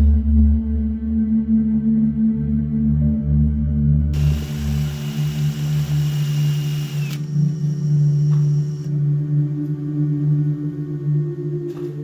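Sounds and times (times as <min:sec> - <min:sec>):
ambient music with singing bowl tones: 0:00.0 - 0:12.0
power tool motor whining: 0:04.2 - 0:09.0.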